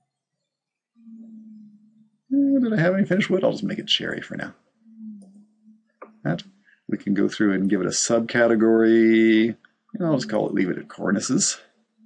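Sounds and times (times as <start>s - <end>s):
man humming: 2.3s - 4.5s, 6.0s - 11.6s.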